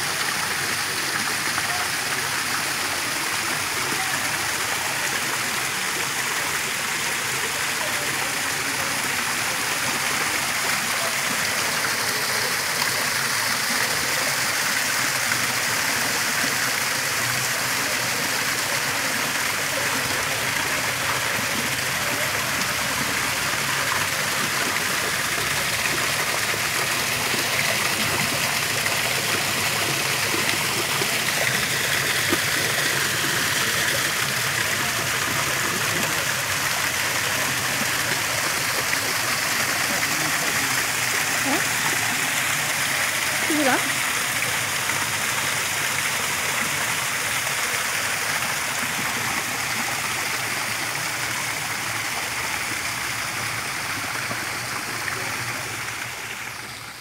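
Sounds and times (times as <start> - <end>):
waterfall splashing into pond: 0.0 - 57.0.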